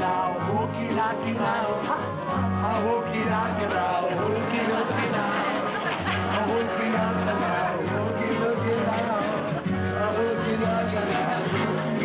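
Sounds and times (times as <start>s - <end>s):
bouncing upright bass line: 0.0s - 12.0s
upbeat live band music: 0.0s - 12.0s.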